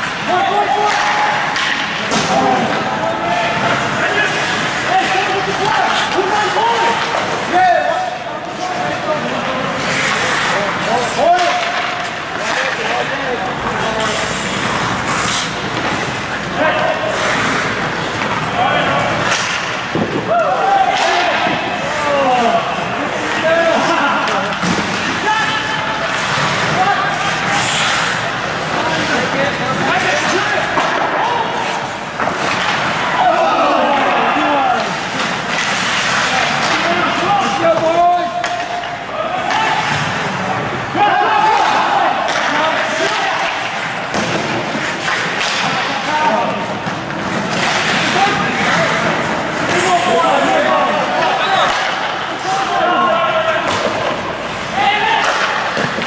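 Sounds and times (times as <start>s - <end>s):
echoing rink din: 0.0s - 56.0s
players shouting: 0.0s - 56.0s
sticks and puck clacking: 0.0s - 56.0s.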